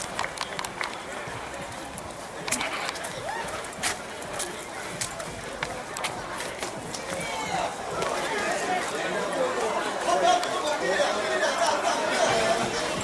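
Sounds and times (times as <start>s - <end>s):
chatter of people talking: 0.0s - 13.0s.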